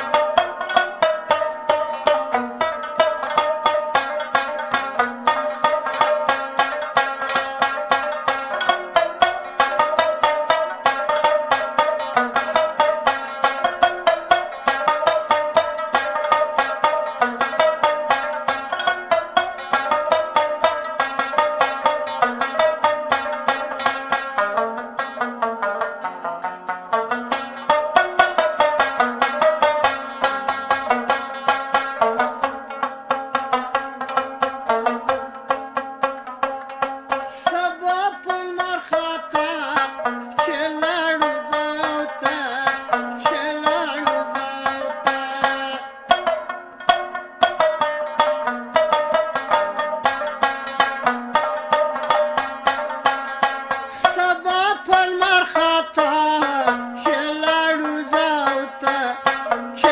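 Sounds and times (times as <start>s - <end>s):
rabab plucked melody: 0.0s - 59.9s.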